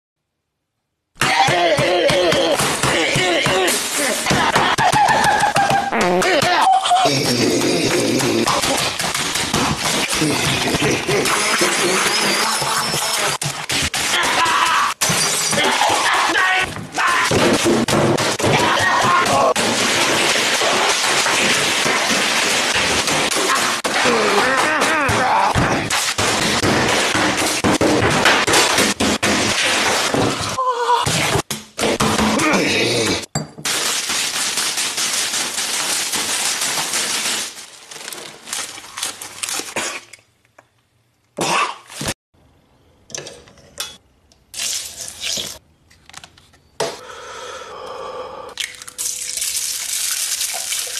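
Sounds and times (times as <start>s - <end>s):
glass smashing and shattering: 15.0s - 16.1s
salad greens crackling and rustling: 33.7s - 39.9s.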